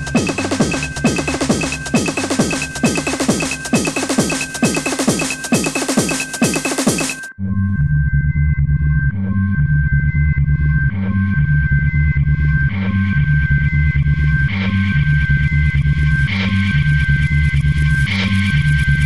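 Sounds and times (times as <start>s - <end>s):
techno music: 0.0s - 7.3s.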